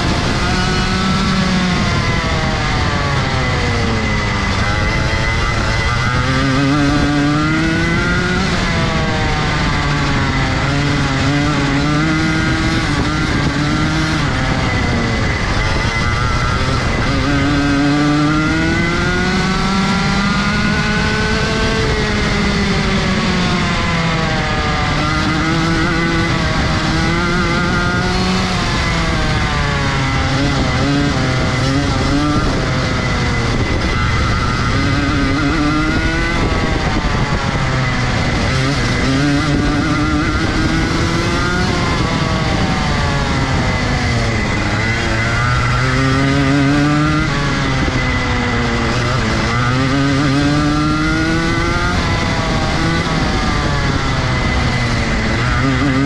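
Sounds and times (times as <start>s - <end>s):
kart engine revving: 0.0s - 56.0s.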